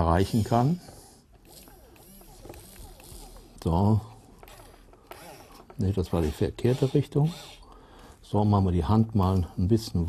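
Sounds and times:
whirring of small gear motors: 0.2s - 7.8s.

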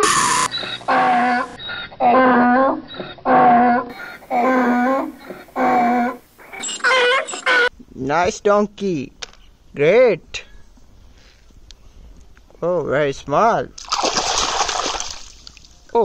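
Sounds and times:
donkey braying: 0.0s - 7.7s.

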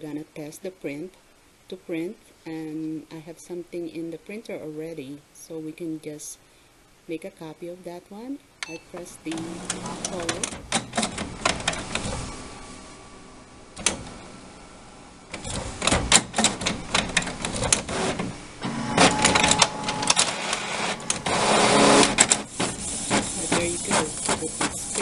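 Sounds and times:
printer mechanism clicking and whirring: 9.3s - 12.3s, 13.8s - 14.3s, 15.3s - 25.0s.

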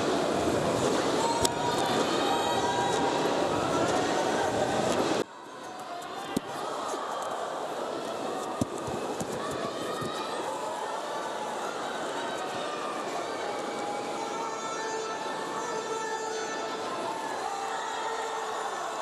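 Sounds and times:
arena crowd murmuring and calling: 0.0s - 19.0s.

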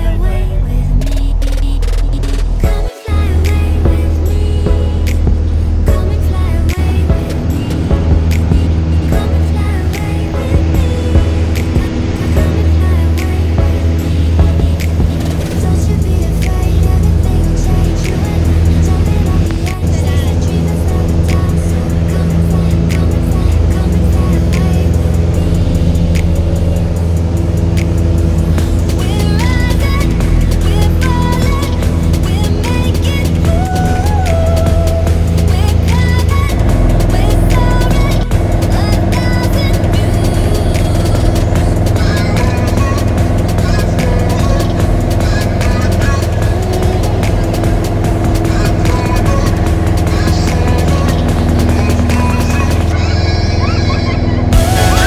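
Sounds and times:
background music: 0.0s - 55.0s
propeller aircraft engine running: 0.0s - 55.0s.

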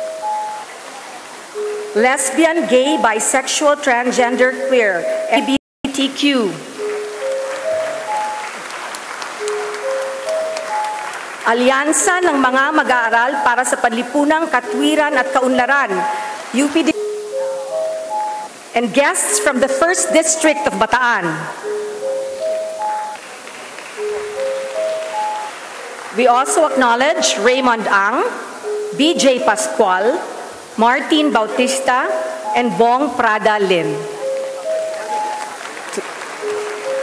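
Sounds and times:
audience applause: 6.8s - 12.7s, 23.1s - 26.6s, 34.2s - 37.0s
rising four-note chime: 15.9s - 18.6s.

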